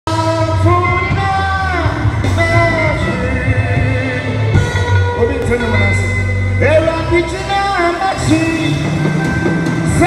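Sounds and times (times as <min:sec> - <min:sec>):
man singing into microphone: 0:00.1 - 0:09.2
amplified instrumental accompaniment: 0:00.1 - 0:10.0.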